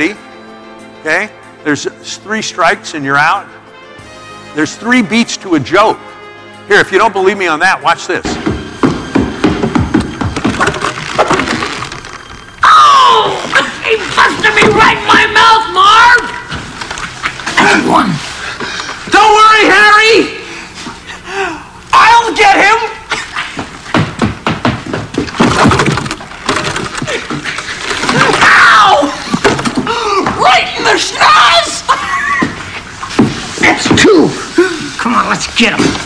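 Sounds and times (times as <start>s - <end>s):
film music: 0.0s - 19.8s
footsteps on wooden stairs: 8.3s - 11.4s, 23.6s - 25.7s, 32.3s - 34.2s
sharp knocks and cracks: 23.6s - 28.5s.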